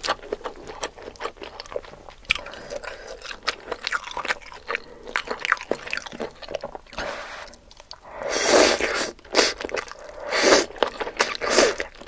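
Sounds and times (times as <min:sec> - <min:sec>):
wet chewing sounds: 0:00.0 - 0:12.0.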